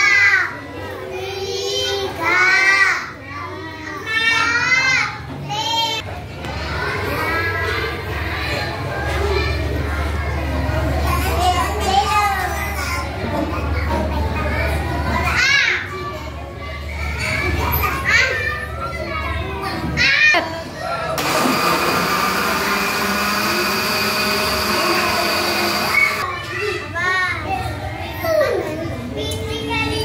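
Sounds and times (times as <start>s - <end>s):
children's excited voices: 14.2s - 30.0s
blender whirring: 21.2s - 26.3s.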